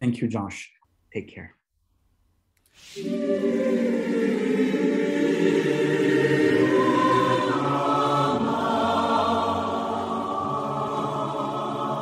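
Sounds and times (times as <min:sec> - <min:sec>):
choir singing held chords: 0:02.8 - 0:12.0.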